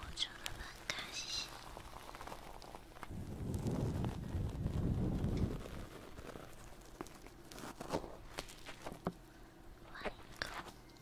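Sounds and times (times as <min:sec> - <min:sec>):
soft clicking and crackling: 0:00.0 - 0:11.0.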